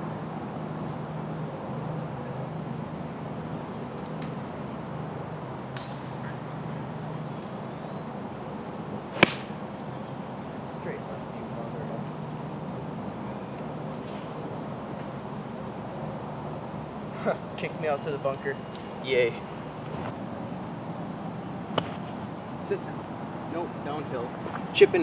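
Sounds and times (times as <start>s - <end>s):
low background hum: 0.0s - 25.0s
golf club striking ball: 5.8s - 6.2s, 9.1s - 9.6s, 21.7s - 22.2s.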